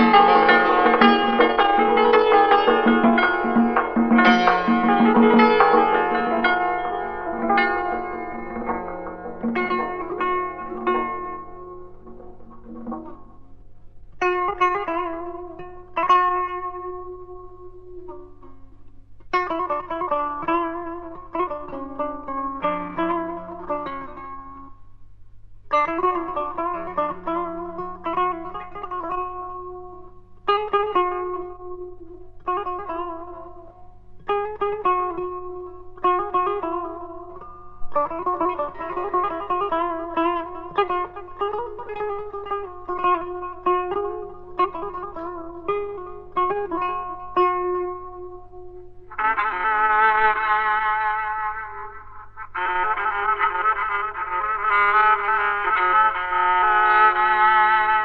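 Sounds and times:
low recording hum: 0.0 - 58.0
plucked string instrument melody: 0.0 - 58.0.

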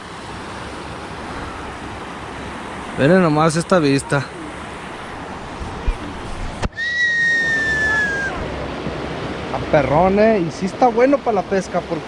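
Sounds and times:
rushing river water: 0.0 - 12.0.

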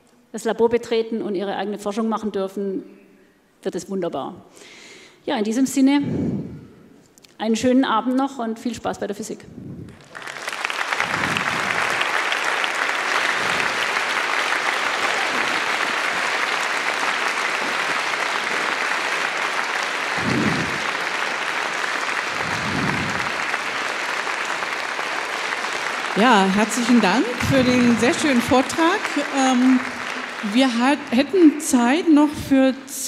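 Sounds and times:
audience applauding: 9.9 - 32.1.

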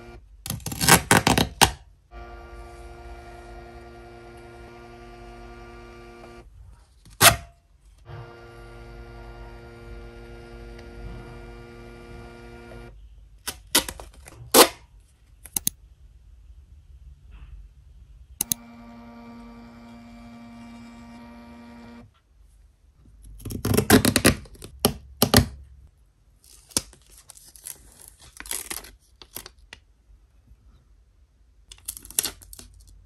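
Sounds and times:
thermal printer whirring: 0.0 - 0.2, 2.1 - 6.5, 8.1 - 13.0, 18.4 - 22.1
sharp clicks: 15.4 - 15.8
paper crinkling and rustling: 26.4 - 29.8.

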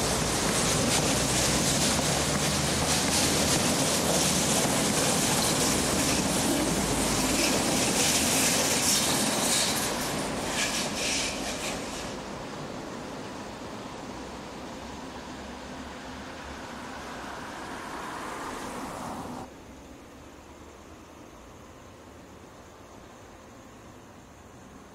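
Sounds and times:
train wheels rumbling on rails: 0.0 - 15.8.

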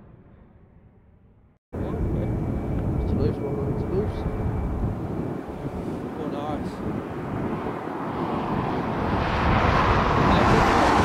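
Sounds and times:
jet engines rumbling: 1.8 - 11.0.

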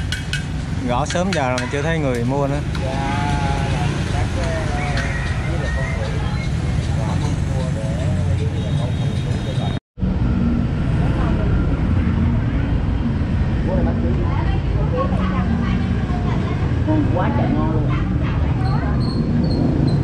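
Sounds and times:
motorbikes passing: 0.0 - 20.0
voices chattering: 0.8 - 9.8, 10.9 - 19.8.

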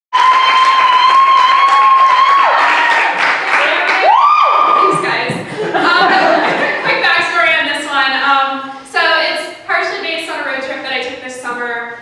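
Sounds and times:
long high cheer: 0.1 - 5.3
audience clapping and cheering: 0.1 - 6.8.

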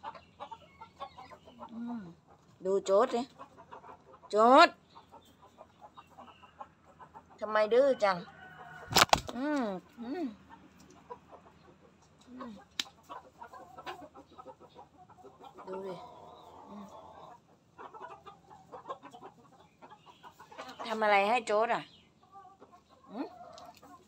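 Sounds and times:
chickens clucking: 0.0 - 24.0.

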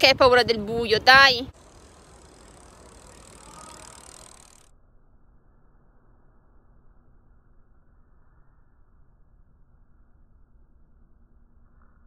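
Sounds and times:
bicycle tyres hissing on asphalt: 1.0 - 4.7.

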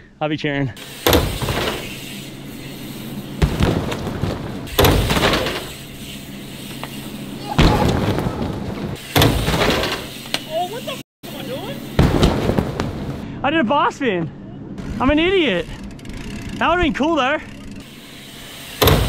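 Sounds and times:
heavy thumps on an airbag: 3.4 - 5.6, 12.0 - 13.2.

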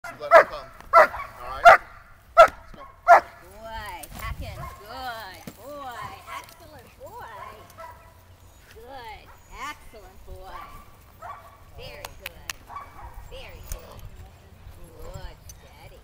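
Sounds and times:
dog barking: 0.0 - 3.4, 7.3 - 8.2, 10.6 - 11.6, 12.7 - 13.2.

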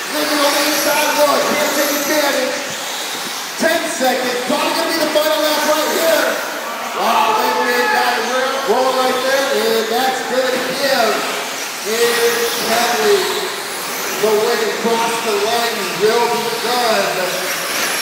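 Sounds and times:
rc cars high hiss: 0.0 - 6.5, 10.6 - 18.0
man announcing: 0.0 - 18.0.

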